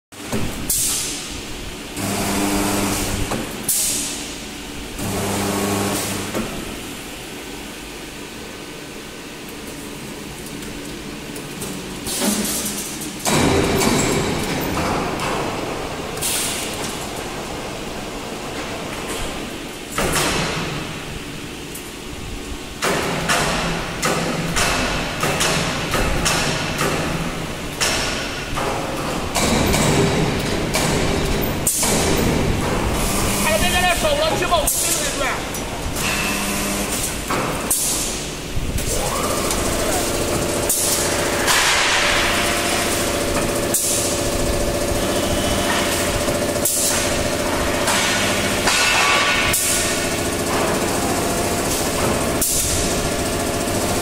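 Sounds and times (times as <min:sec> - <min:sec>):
welding machine humming: 0:00.5 - 0:07.1, 0:29.6 - 0:54.0
repeated metal strikes: 0:39.5 - 0:54.0.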